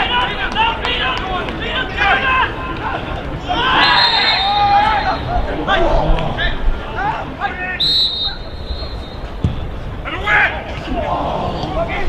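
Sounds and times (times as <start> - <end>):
men shouting and calling out: 0.0 - 8.6, 10.0 - 12.0.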